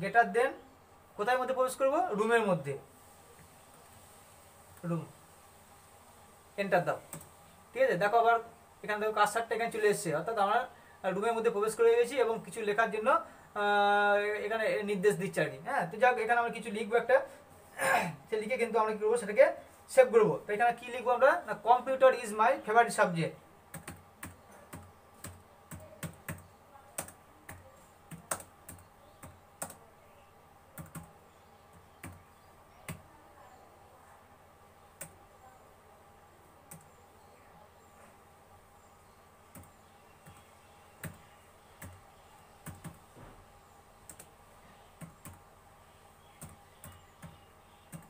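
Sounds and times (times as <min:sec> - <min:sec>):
keyboard typing: 0:23.7 - 0:29.8, 0:30.8 - 0:31.1, 0:31.7 - 0:32.2, 0:36.7 - 0:37.0, 0:39.5 - 0:43.1, 0:44.0 - 0:45.4, 0:46.3 - 0:48.0.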